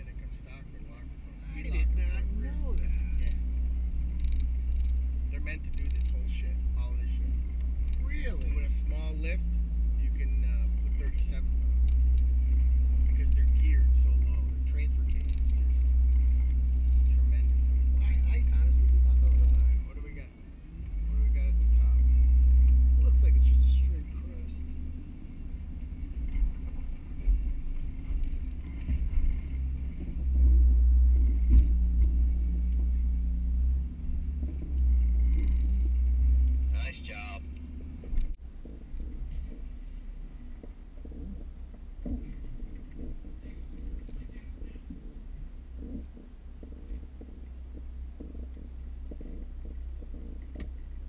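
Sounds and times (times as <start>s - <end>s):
engine running at low revs: 0.0s - 51.0s
heavy low rumble: 0.0s - 51.0s.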